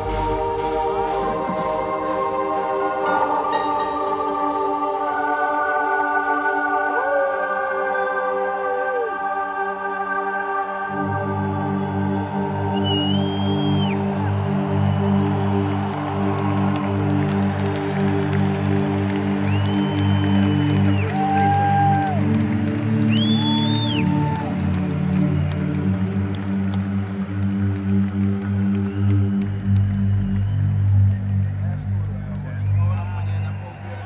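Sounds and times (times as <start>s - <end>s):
piercing whistles from crowd: 12.0s - 14.1s, 19.4s - 21.9s, 23.0s - 24.2s, 32.5s - 34.0s.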